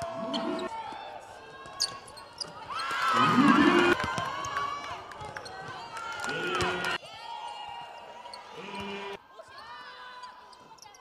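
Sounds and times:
faint voices in arena: 0.0 - 11.0.

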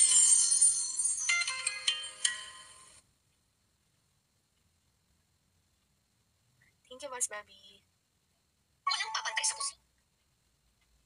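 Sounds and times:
bell-like chime melody: 0.0 - 2.8.

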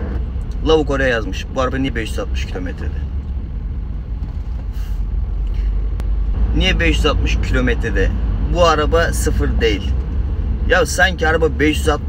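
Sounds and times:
car cabin rumble: 0.0 - 12.0
brief hiss: 4.6 - 5.7.

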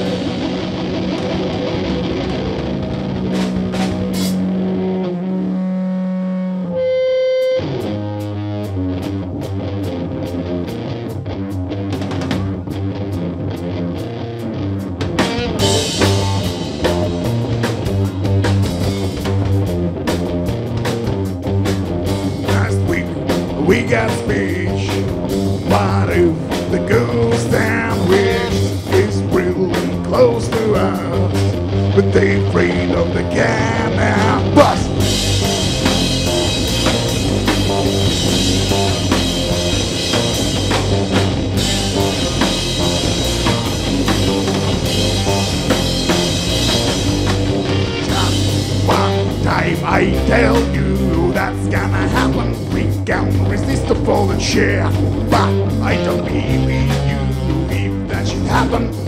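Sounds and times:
rock band playing live: 0.0 - 59.0.

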